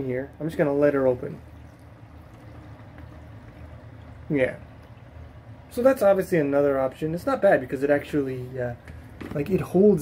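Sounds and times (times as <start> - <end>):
steady low hum: 0.0 - 10.0
water trickling into plastic basin: 0.0 - 10.0.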